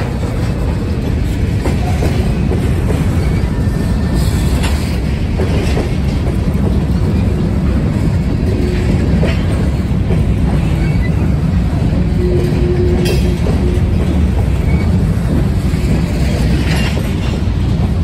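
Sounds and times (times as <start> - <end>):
clickety-clack of rail joints: 0.0 - 18.0
freight train rolling past: 0.0 - 18.0.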